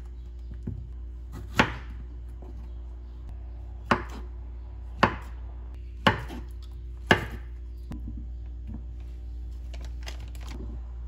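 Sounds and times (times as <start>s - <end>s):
steady low hum: 0.0s - 11.0s
knife chopping on wooden board: 0.6s - 2.1s, 5.0s - 5.4s, 6.0s - 7.6s.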